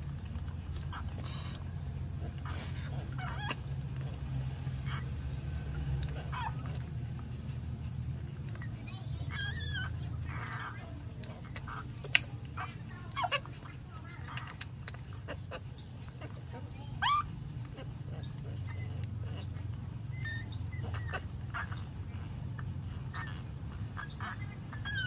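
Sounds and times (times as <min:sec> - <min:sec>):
puppy squeaking: 0:00.0 - 0:25.0.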